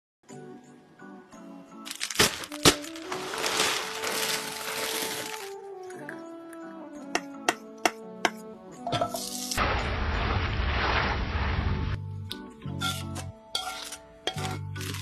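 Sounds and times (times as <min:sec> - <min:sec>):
background music with held notes: 0:00.2 - 0:09.6, 0:11.9 - 0:15.0.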